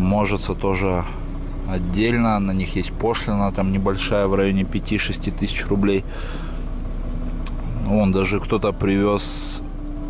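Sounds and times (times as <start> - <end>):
vehicle running hum: 0.0 - 10.0.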